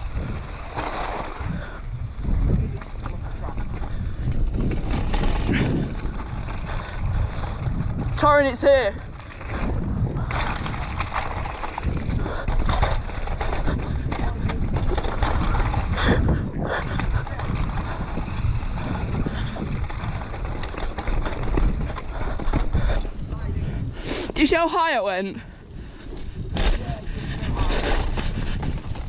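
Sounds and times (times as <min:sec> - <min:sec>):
tyres crunching over dirt: 0:00.0 - 0:23.6
wind rumble on microphone: 0:00.0 - 0:24.4, 0:25.3 - 0:29.0
bike knocking and rattling: 0:00.0 - 0:25.0, 0:25.8 - 0:29.0.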